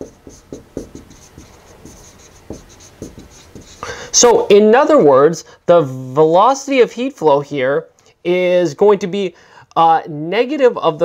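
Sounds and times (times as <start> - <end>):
marker squeak: 0.0 - 4.3
marker writing on whiteboard: 0.0 - 4.4.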